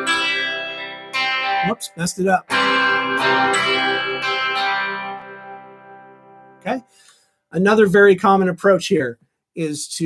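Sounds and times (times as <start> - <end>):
electric guitar chord notes ringing: 0.0 - 7.0.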